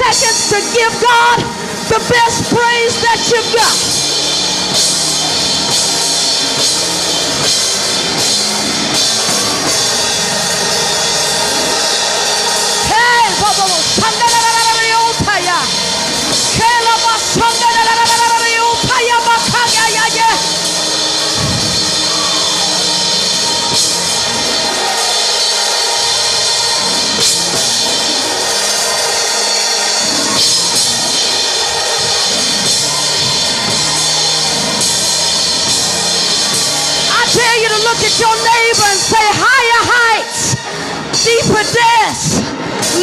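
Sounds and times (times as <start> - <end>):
church band drums and cymbals: 0.0 - 43.0
congregation clapping and shouting: 0.0 - 43.0.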